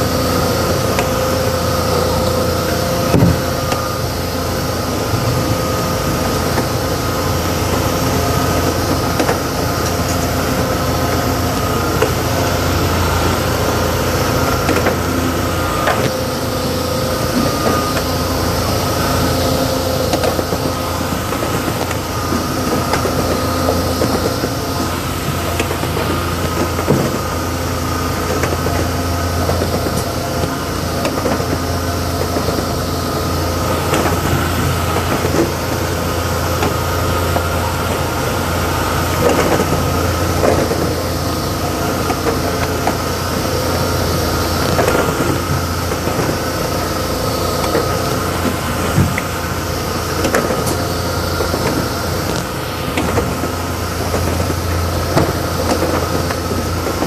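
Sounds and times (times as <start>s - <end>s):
conveyor clicks and clacks: 0.0s - 57.0s
machine humming: 0.0s - 57.0s.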